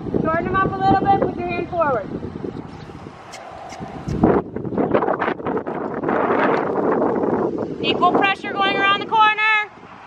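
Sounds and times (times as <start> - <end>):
wind buffeting microphone: 0.0 - 10.0
horse hooves trotting on sand: 2.6 - 4.6.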